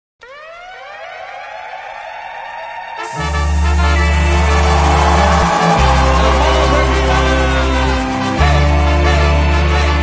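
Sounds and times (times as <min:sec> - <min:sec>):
siren-like rising tone: 0:00.2 - 0:09.1.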